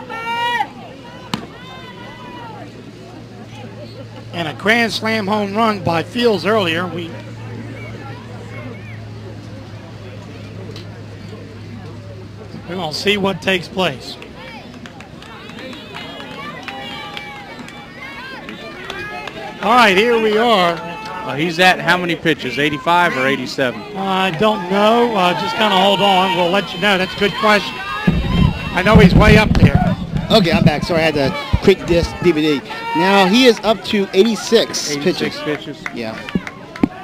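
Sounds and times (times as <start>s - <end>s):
distant crowd chattering and calling: 0.0s - 37.0s.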